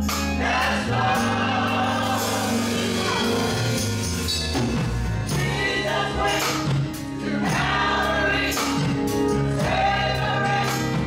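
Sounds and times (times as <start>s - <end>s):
church choir singing gospel: 0.0s - 11.0s
organ accompaniment: 0.0s - 11.0s.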